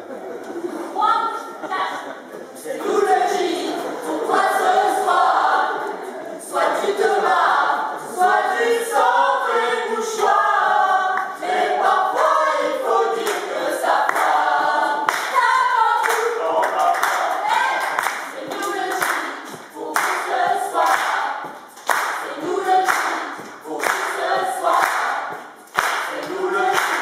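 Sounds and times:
group singing a cappella: 0:02.1 - 0:27.0
sharp rhythmic claps: 0:10.2 - 0:27.0.

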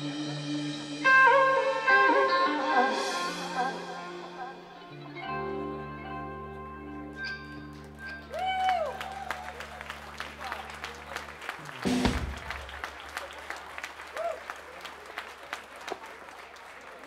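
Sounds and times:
audience clapping: 0:07.6 - 0:17.0.

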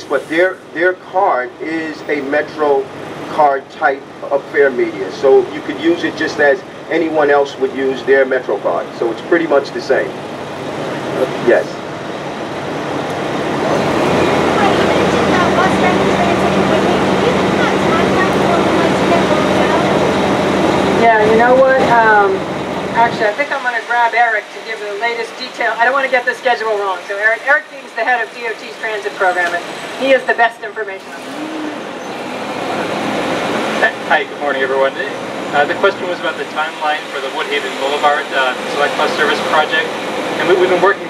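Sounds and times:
heavy vehicle engine: 0:00.0 - 0:41.0
street traffic noise: 0:00.0 - 0:41.0
motor vehicle passing: 0:29.3 - 0:40.9.

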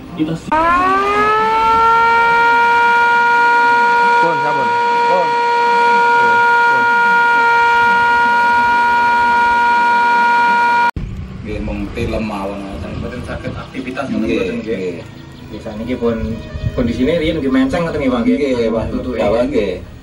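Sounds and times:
warning siren: 0:00.5 - 0:11.0.

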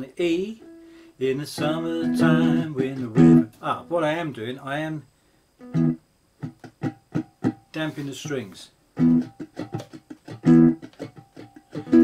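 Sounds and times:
damped guitar strums: 0:00.0 - 0:04.2, 0:05.6 - 0:08.3, 0:09.0 - 0:12.0.

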